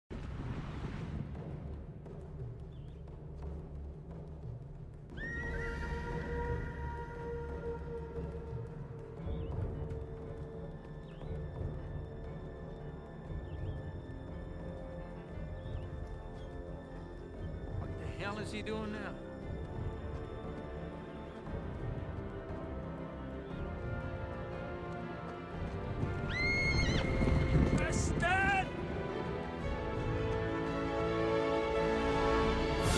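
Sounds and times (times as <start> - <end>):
music: 0.1 - 32.9
running hooves drumming: 1.1 - 32.9
horses galloping: 1.3 - 31.0
horse whinnying: 26.2 - 27.2.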